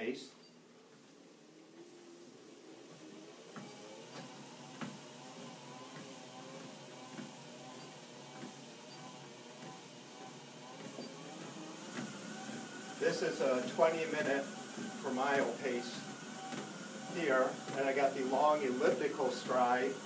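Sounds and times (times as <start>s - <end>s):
treadmill motor hum: 0.0s - 20.0s
footfalls on treadmill belt: 2.9s - 20.0s.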